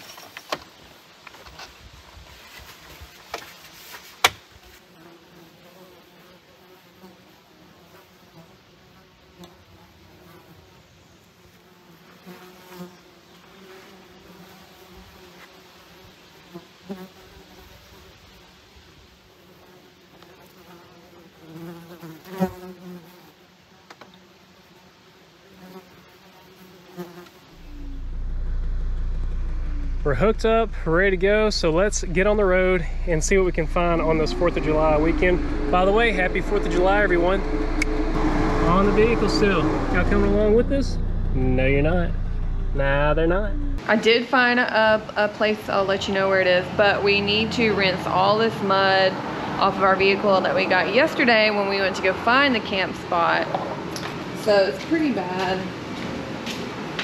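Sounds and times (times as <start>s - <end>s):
flying insects buzzing: 0.0s - 40.5s
low steady rumble: 27.6s - 43.8s.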